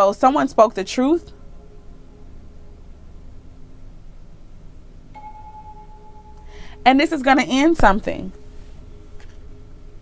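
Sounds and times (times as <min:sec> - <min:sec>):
faint low drone: 0:00.1 - 0:10.0
soft bell-like chime tone: 0:05.2 - 0:06.9.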